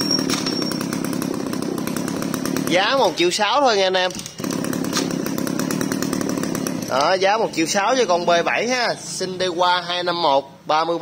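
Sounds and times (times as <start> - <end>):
brush cutter engine running: 0.0 - 8.6.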